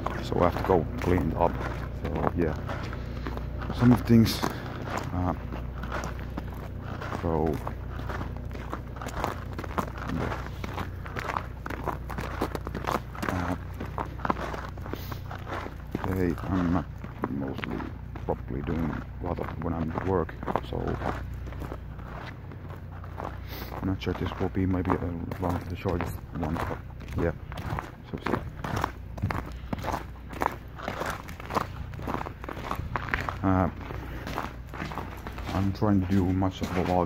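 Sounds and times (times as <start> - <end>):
footsteps walking: 0.0 - 37.0
low rumble on microphone: 0.0 - 37.0.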